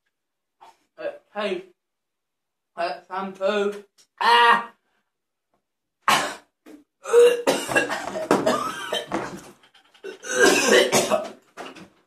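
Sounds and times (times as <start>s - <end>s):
man coughing and clearing throat: 6.1s - 9.5s, 10.1s - 11.4s.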